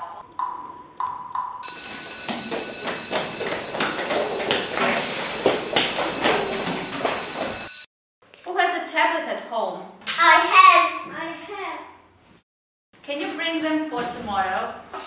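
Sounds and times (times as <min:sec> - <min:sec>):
electric school bell ringing: 0:01.6 - 0:07.9.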